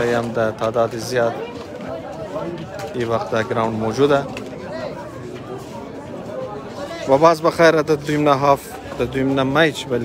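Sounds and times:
murmur of men's voices: 0:00.0 - 0:10.0.

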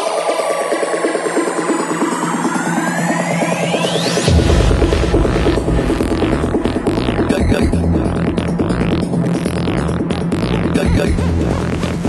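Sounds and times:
synth bassline: 0:02.1 - 0:12.0.

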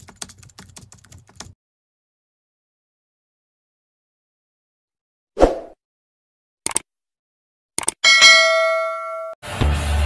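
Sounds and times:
computer keyboard typing: 0:00.0 - 0:01.6.

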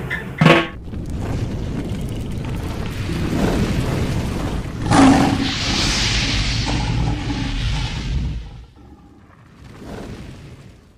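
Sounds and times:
low rumble: 0:00.8 - 0:09.8
flames hissing: 0:00.8 - 0:10.7.

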